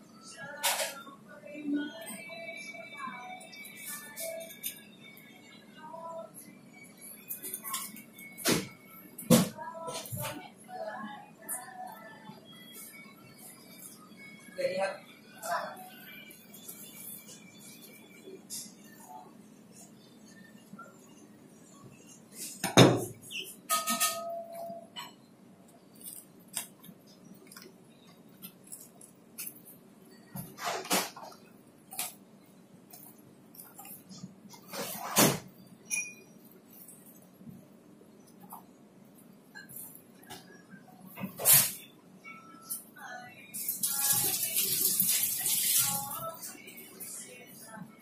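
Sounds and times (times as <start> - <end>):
water tap running: 43.8 - 46.4.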